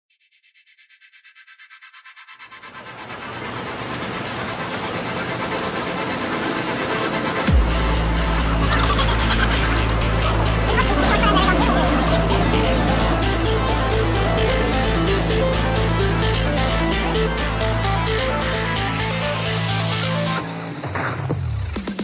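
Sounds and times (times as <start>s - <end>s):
electronic dance music: 2.4s - 22.0s
falling bass sweep: 10.0s - 19.3s.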